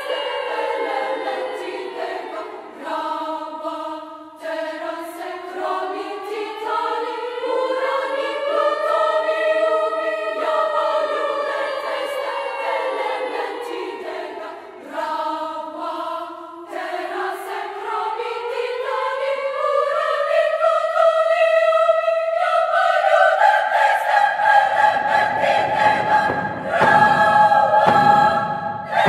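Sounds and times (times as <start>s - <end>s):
women's choir singing chords: 0.0s - 29.0s.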